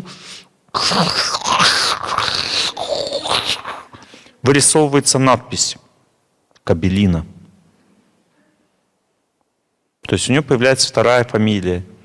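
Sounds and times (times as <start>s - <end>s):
man groaning: 0.8s - 4.0s.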